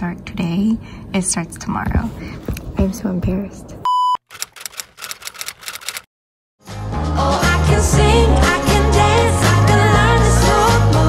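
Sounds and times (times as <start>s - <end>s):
test-tone beep: 3.9s - 4.2s
computer keyboard typing: 4.3s - 6.1s.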